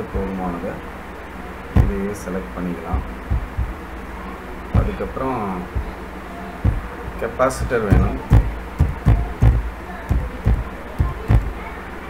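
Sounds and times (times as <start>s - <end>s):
keyboard keys thudding: 1.8s - 2.3s, 2.9s - 3.9s, 4.8s - 5.0s, 5.8s - 6.0s, 6.6s - 11.6s.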